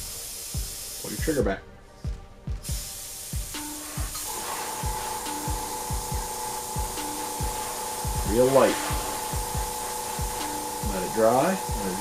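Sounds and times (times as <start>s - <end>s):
airbrush hissing: 0.0s - 1.4s, 2.6s - 12.0s
background music with beat: 0.0s - 12.0s.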